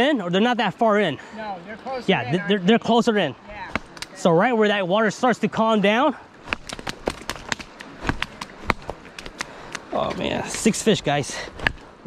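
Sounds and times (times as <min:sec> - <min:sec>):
faint flowing water: 0:00.0 - 0:12.0.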